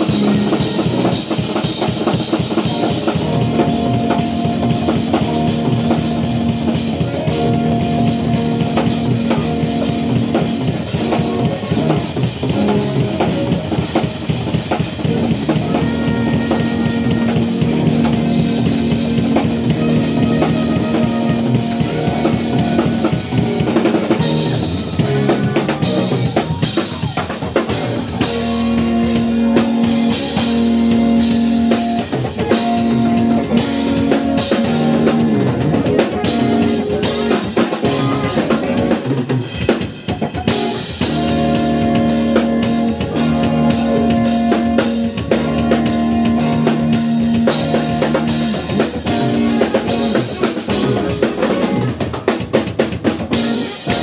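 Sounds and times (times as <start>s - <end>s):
drum kit solo: 0.0s - 54.0s.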